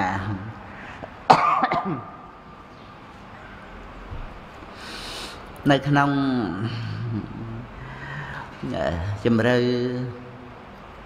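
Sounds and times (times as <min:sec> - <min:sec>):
man coughing: 0:01.3 - 0:02.2.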